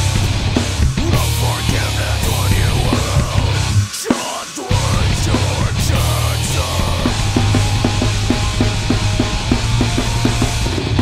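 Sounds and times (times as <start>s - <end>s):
heavy metal drums and guitar: 0.0s - 11.0s.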